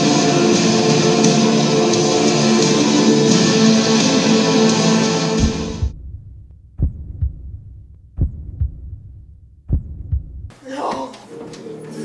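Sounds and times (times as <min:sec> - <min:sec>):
heartbeat double thumps: 0:05.4 - 0:10.5.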